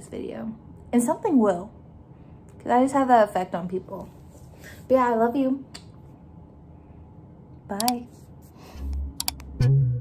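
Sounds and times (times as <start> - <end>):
music with low bass note: 8.8 - 10.0
sharp mouse clicks: 9.2 - 9.5.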